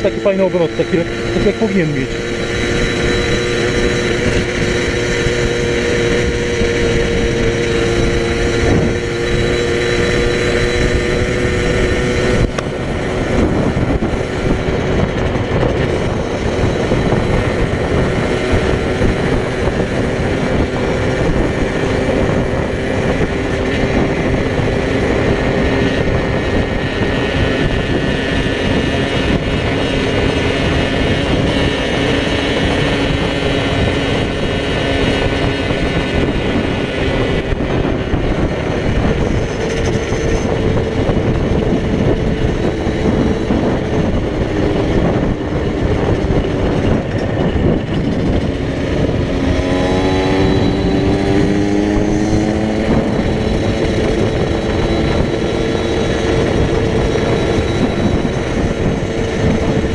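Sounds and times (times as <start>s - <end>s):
motorcycle engine cruising: 0.0s - 59.9s
wind rush over microphone: 0.0s - 59.9s.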